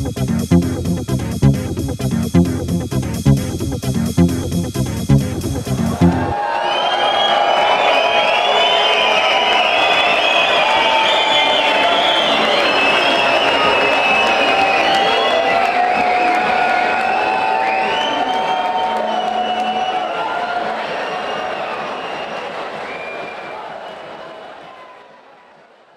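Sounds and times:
pounding techno beat: 0.0 - 6.4
crowd cheering and whooping: 5.8 - 25.9.

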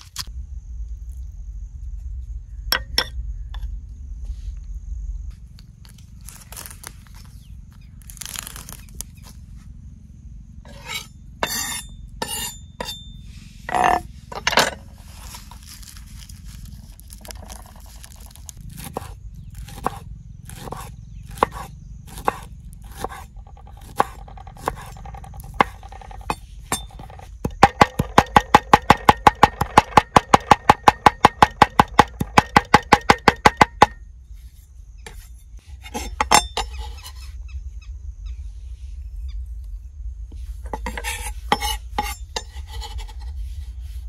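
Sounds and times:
knife scraping across board: 10.7 - 13.0, 13.6 - 16.2, 17.1 - 27.2, 34.5 - 37.4, 40.3 - 44.0
knife chopping on wooden board: 17.4 - 34.0.

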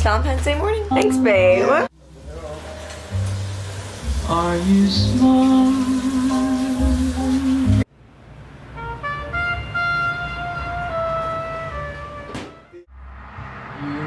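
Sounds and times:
background music: 0.7 - 7.9.

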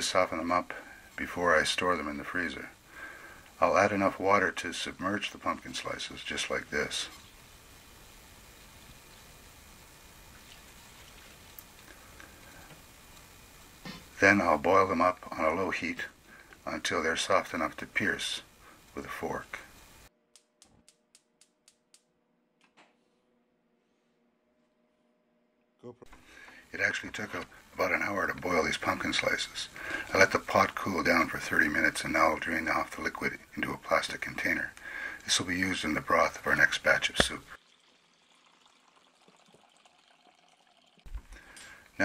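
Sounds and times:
liquid trickling into container: 36.4 - 41.5.

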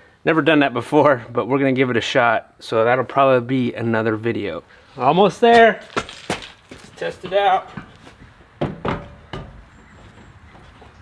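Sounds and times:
boots thumping on metal bumper: 7.7 - 10.8.

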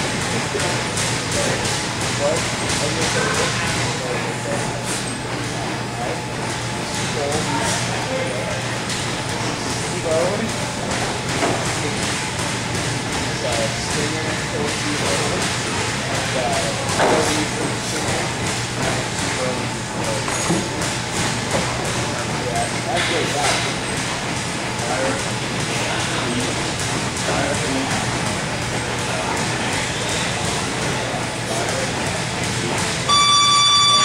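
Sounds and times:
room noise: 0.0 - 34.0
electronic timer buzzer: 33.1 - 34.0.

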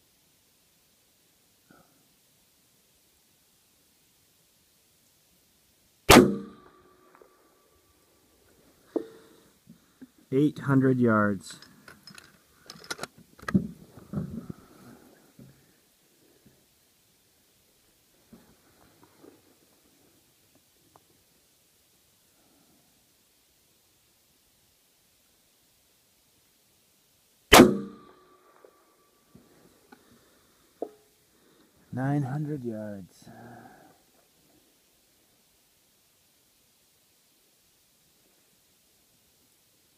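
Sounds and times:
faint bullet hitting steel plate: 6.1 - 7.3, 27.5 - 28.8
faint ping of bullet on steel: 6.1 - 7.3
rifle shot: 6.1 - 7.3, 27.5 - 28.7.

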